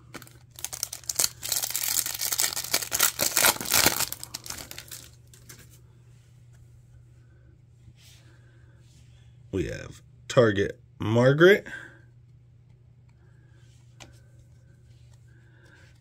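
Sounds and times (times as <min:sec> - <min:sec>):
foil wrapper tearing and crinkling: 0:00.2 - 0:05.4.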